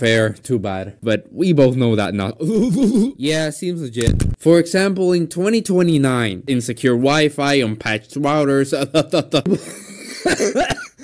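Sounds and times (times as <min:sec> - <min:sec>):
man speaking: 0:00.0 - 0:09.5
man laughing: 0:02.4 - 0:03.2, 0:08.7 - 0:11.0
man coughing: 0:09.5 - 0:11.0.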